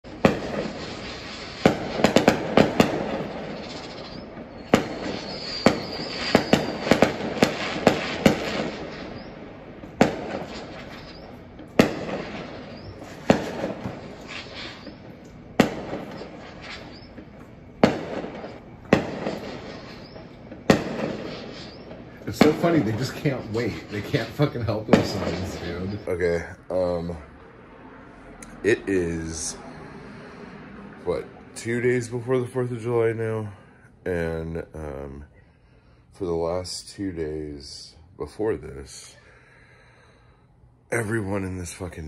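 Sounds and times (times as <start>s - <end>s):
crackling pops: 0.0s - 26.1s
firework bangs: 0.0s - 26.2s
high firework whistle: 0.1s - 26.1s.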